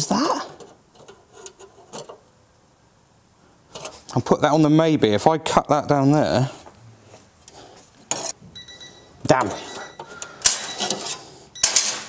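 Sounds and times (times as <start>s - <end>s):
high electronic timer beep: 8.6s - 10.0s.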